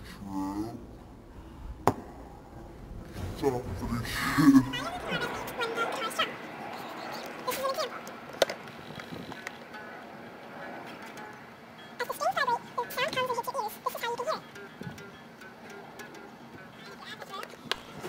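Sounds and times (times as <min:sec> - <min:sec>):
voices: 0:01.9 - 0:17.9.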